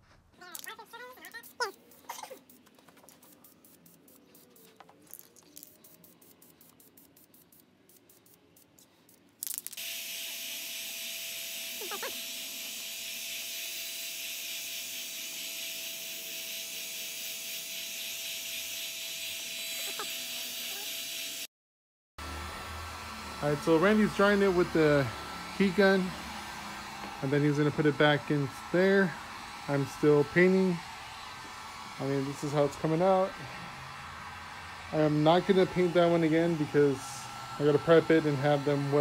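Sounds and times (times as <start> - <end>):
spray can ball rattling: 0.4 - 9.8.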